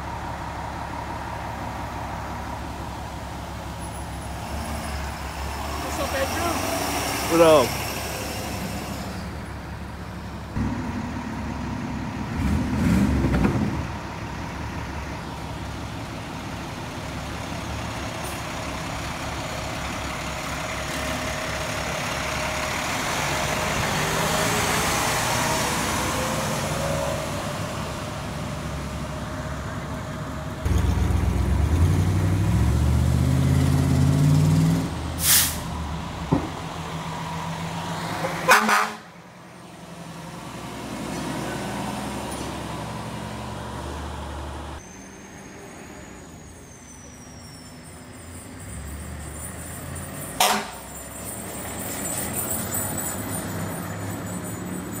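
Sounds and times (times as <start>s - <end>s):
diesel trucks driving past: 0.0s - 55.0s
truck engine revving through gears: 4.4s - 9.5s, 10.5s - 14.1s, 18.0s - 28.8s, 30.6s - 38.8s
air brake hisses: 35.2s - 35.7s.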